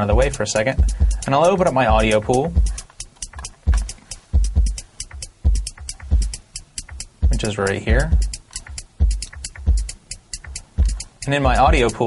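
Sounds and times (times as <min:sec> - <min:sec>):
crisp hi-hat ticks: 0:00.0 - 0:12.0
deep kick drum hits: 0:00.1 - 0:01.3, 0:01.9 - 0:02.8, 0:03.6 - 0:04.8, 0:05.4 - 0:06.4, 0:07.2 - 0:08.4, 0:09.0 - 0:09.9.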